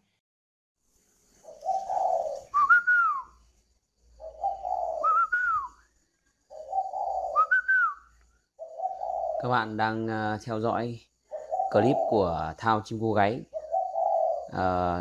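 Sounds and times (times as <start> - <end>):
dove cooing: 1.4 - 10.3, 11.1 - 15.0.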